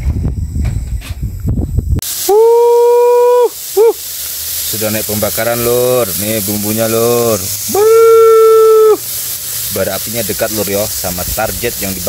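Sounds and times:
charcoal fire rumbling and crackling: 0.0 - 12.0.

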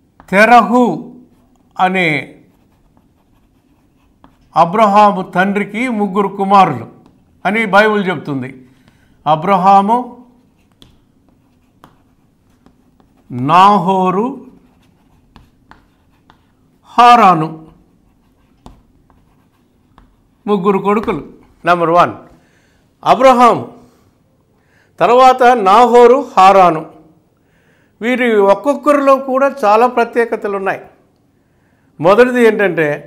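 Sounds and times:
chalk tap: 0.1 - 0.4, 2.5 - 4.6, 7.0 - 7.3, 8.8 - 9.1, 10.4 - 13.6, 14.4 - 16.6, 17.7 - 20.3, 20.9 - 21.6
man speaking: 0.3 - 1.2, 4.5 - 8.6, 9.2 - 10.4, 13.3 - 14.6, 16.8 - 17.8, 20.4 - 22.3, 23.0 - 23.8
chalk writing on blackboard: 2.4 - 4.6, 7.0 - 7.3, 10.2 - 16.7, 17.5 - 21.7.

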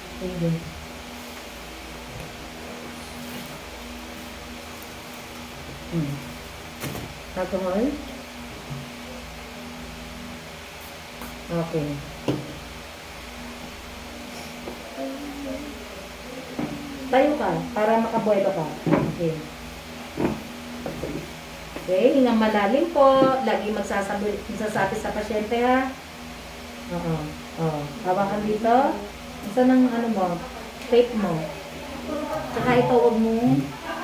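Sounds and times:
electric fan running: 0.0 - 34.0
low room hum: 0.0 - 34.0.

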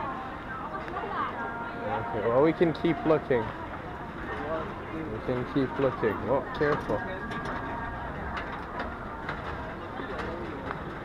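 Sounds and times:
murmur of passers-by: 0.0 - 11.0.

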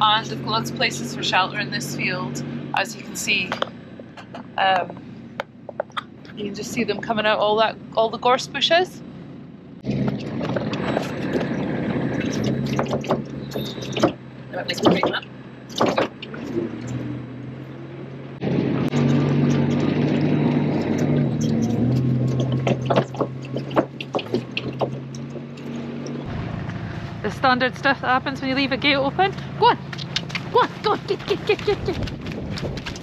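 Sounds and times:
farm vehicle engine running: 0.0 - 33.0
knocks and rattles: 3.4 - 6.4, 9.8 - 17.2, 18.4 - 26.4.

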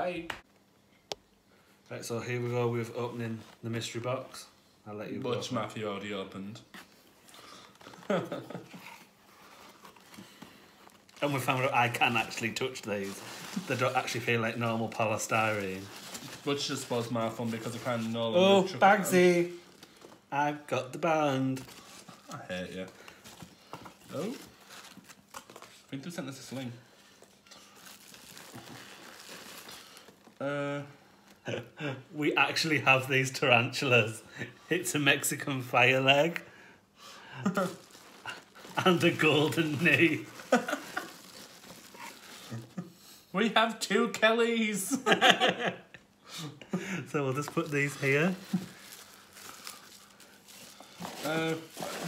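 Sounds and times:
rustling of packing material: 6.7 - 30.4, 37.5 - 42.8, 47.2 - 52.0
bubble wrap crinkling: 6.8 - 30.5, 37.5 - 42.8, 47.2 - 52.0.

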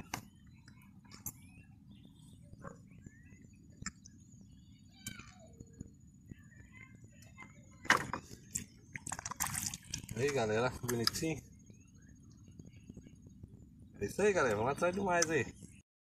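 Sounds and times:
faint bird chirps: 0.0 - 15.8.

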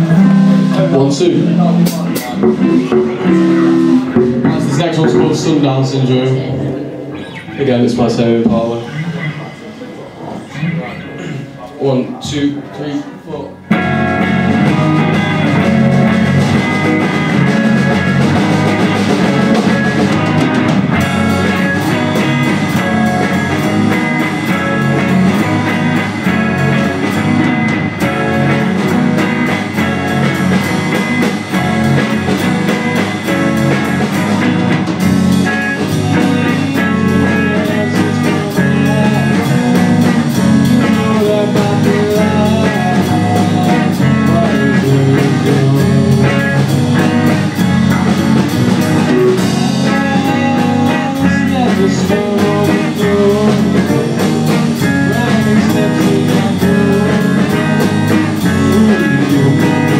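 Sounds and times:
bass guitar: 0.0 - 11.6, 13.2 - 59.9
drums: 0.0 - 59.9
electric guitars: 0.0 - 59.9
man singing: 35.5 - 47.4, 49.0 - 59.9.

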